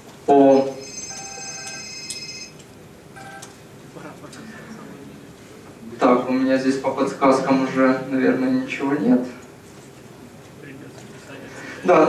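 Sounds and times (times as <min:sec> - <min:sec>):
laptop alert chime: 0:00.6 - 0:02.6.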